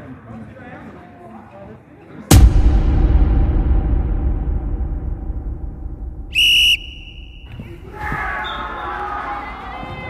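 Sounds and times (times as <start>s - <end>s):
referee's whistle blast: 6.3s - 7.6s.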